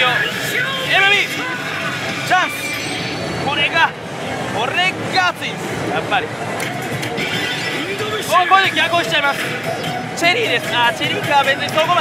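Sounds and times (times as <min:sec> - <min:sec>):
loud din of pachinko parlour: 0:00.0 - 0:12.0.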